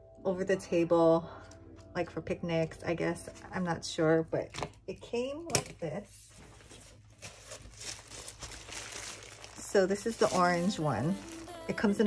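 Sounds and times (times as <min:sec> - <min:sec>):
plastic wrapper crinkling: 0:06.3 - 0:12.0.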